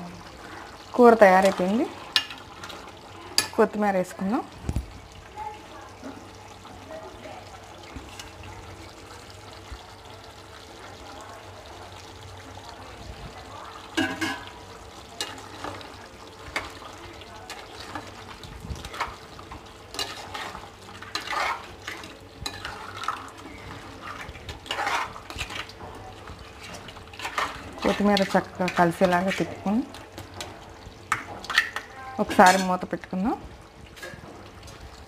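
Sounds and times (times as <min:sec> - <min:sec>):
ladle scraping metal pan: 0:14.0 - 0:14.6, 0:19.9 - 0:25.9, 0:26.5 - 0:32.8.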